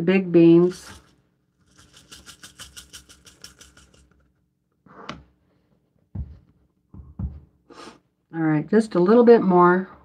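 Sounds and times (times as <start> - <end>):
rice rattling through a funnel: 0.6 - 4.2.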